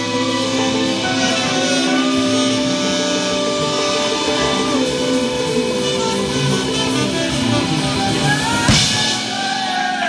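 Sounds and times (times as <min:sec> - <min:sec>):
soul band playing: 0:00.0 - 0:10.0
steelpan long notes: 0:00.0 - 0:10.0.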